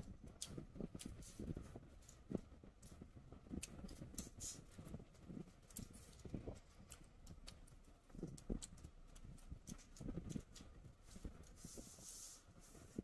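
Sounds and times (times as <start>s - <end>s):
chewing rice: 0.0s - 12.1s
wet lip smacks and clicks: 8.2s - 10.6s.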